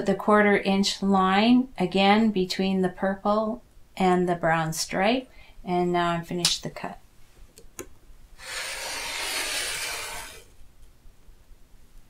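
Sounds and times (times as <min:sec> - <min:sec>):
rotary cutter rasping through fabric: 0:08.4 - 0:10.5.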